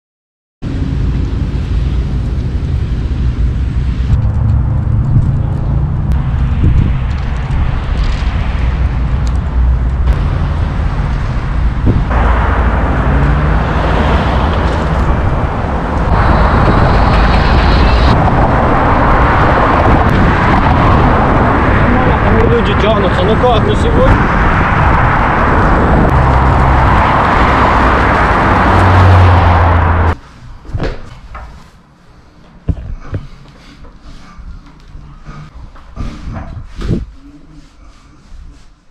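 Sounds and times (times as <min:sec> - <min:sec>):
wind buffeting microphone: 0:01.4 - 0:30.9, 0:34.4 - 0:37.3.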